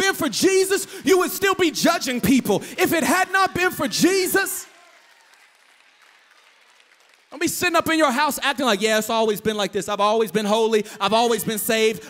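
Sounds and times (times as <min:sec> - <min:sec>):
audience applause: 0:03.1 - 0:07.5.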